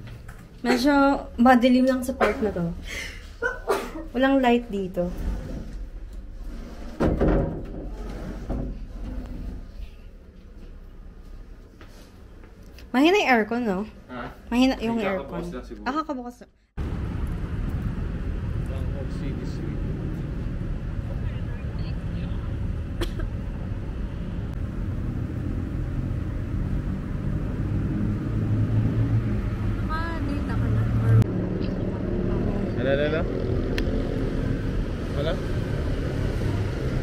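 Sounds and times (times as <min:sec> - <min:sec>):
low rumble of road traffic: 0:16.7 - 0:37.0.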